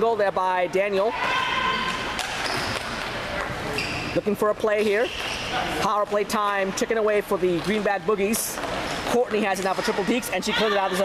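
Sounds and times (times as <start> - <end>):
sneakers squeaking on floor: 1.2 - 6.6
hockey sticks and ball clacking: 1.2 - 11.0.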